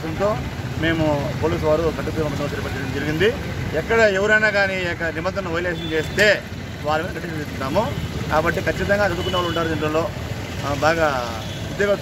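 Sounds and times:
low rumble of street noise: 0:00.0 - 0:12.0
man speaking: 0:00.0 - 0:12.0.

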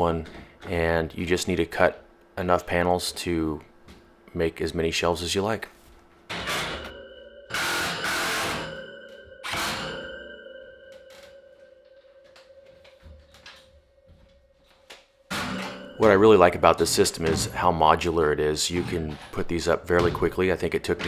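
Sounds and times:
metallic ringing: 0:06.3 - 0:18.7.

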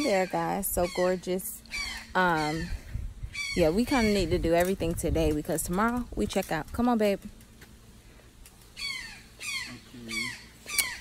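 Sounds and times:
bird squawking: 0:00.0 - 0:04.4, 0:08.7 - 0:11.0.

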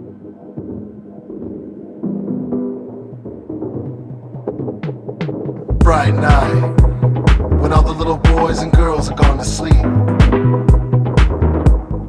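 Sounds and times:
sustained synth tones: 0:00.0 - 0:04.8, 0:05.7 - 0:10.9.

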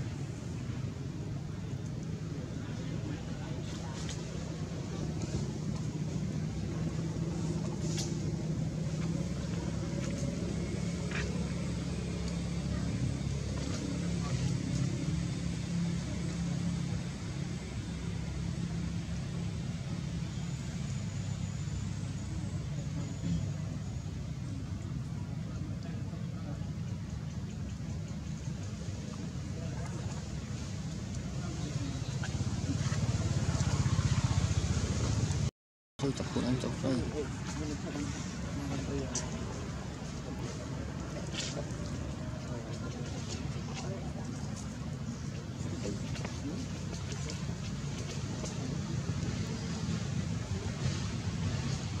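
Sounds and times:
low background rumble: 0:00.0 - 0:52.0.

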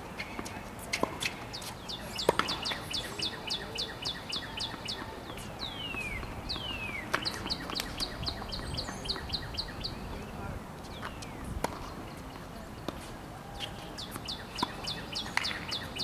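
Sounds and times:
bird singing: 0:01.5 - 0:12.4, 0:13.8 - 0:16.0.

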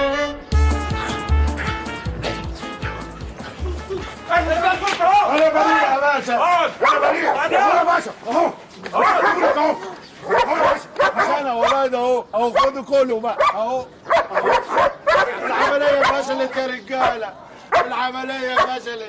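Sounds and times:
men yelling and crying out: 0:02.7 - 0:12.0
dogs barking and yelping: 0:06.8 - 0:07.7, 0:08.9 - 0:11.9, 0:13.4 - 0:18.8.

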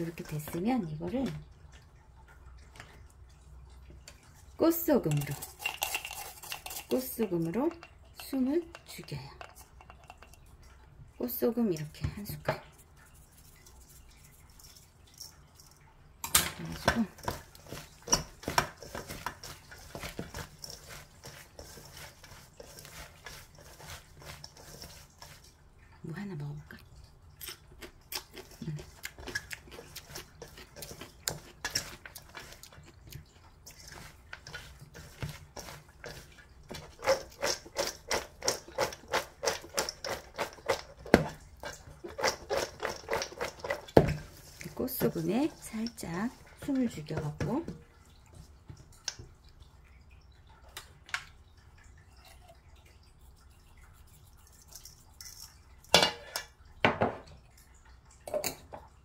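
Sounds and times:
radish tossed in metal bowl: 0:04.7 - 0:10.4, 0:11.8 - 0:25.6, 0:28.3 - 0:47.8, 0:54.5 - 0:56.4.

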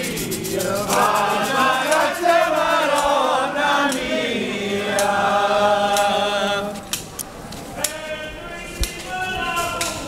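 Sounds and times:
group singing unaccompanied: 0:00.0 - 0:07.2.

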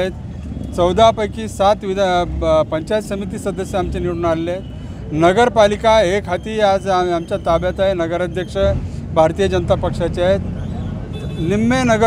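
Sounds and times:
man speaking into microphones: 0:00.0 - 0:10.5, 0:11.3 - 0:12.0
street traffic rumble: 0:00.0 - 0:12.0.

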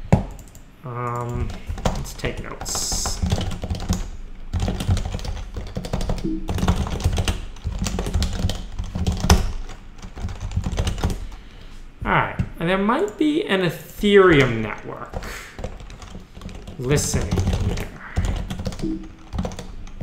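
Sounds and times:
fast typing on keyboard: 0:00.4 - 0:11.3, 0:14.3 - 0:20.0.

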